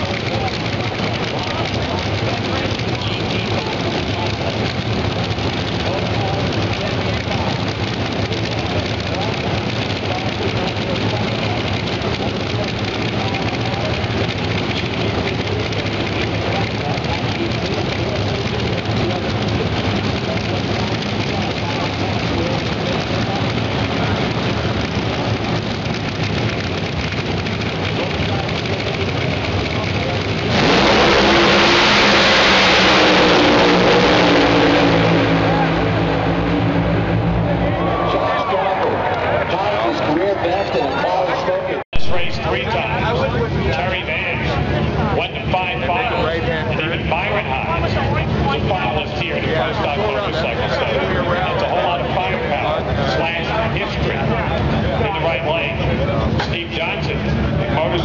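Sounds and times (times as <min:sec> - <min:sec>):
drag racers launching at full throttle: 0:00.0 - 0:58.0
idling engines: 0:00.0 - 0:58.0
voices: 0:00.0 - 0:58.0.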